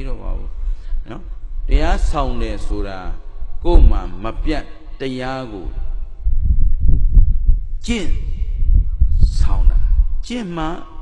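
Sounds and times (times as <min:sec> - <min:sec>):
man talking: 0:00.0 - 0:06.0, 0:07.8 - 0:08.4, 0:09.2 - 0:11.0
microphone handling thumps: 0:06.0 - 0:10.2.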